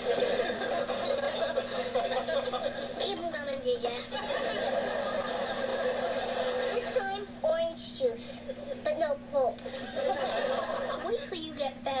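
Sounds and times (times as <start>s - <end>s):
studio audience laughing: 0.0s - 3.2s, 3.8s - 7.1s, 9.6s - 11.4s.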